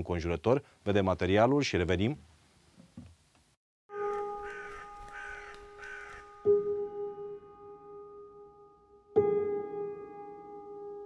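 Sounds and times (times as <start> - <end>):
crow cawing: 4.2 - 6.5.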